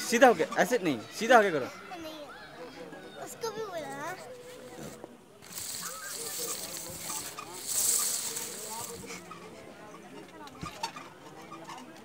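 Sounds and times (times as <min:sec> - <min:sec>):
faint distant voices: 0:00.0 - 0:12.0
burst of hiss: 0:05.5 - 0:09.1.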